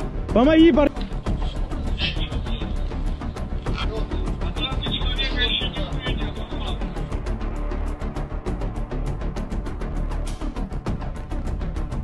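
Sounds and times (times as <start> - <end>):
background music with steady beat: 0.0 - 12.0
deep bass: 0.0 - 12.0.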